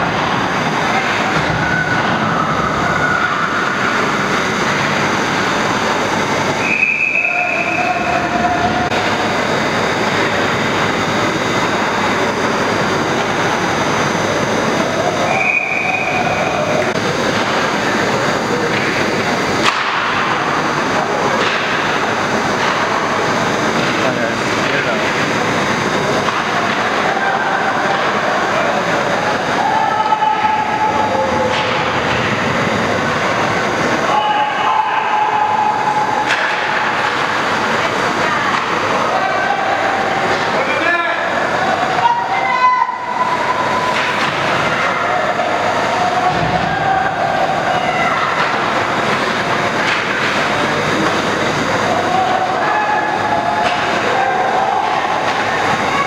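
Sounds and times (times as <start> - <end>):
ice rink ambience: 0.0 - 56.0
indistinct crowd voices: 0.0 - 56.0.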